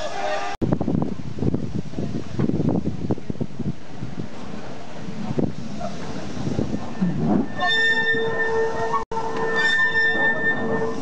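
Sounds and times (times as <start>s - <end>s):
train wheels rumbling: 1.9s - 11.0s
train wheels squealing on rail: 6.7s - 11.0s.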